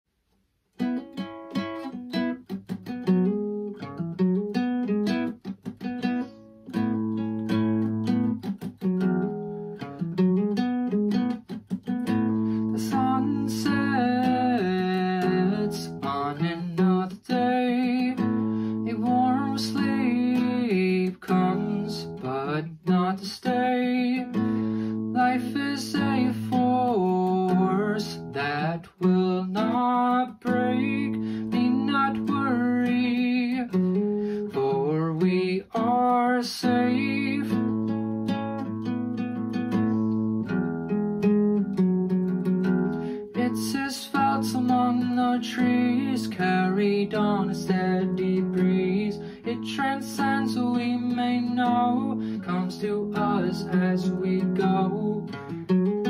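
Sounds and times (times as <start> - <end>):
acoustic guitar strumming chords: 0.8 - 56.0.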